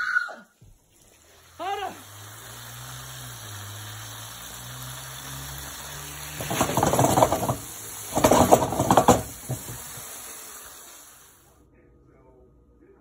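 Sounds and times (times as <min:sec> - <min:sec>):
chicken sizzling in a frying pan: 0:00.7 - 0:11.6.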